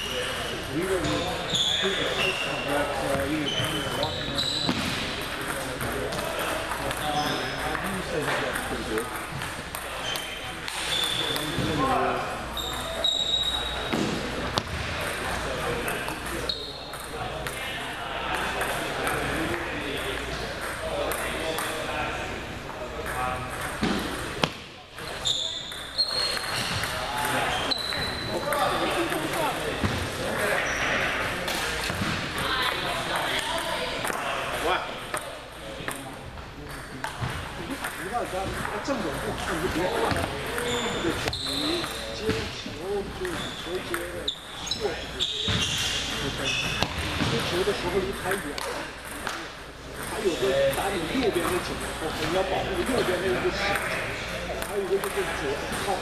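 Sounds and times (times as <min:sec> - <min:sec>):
table tennis balls clicking: 0:36.7 - 0:40.7.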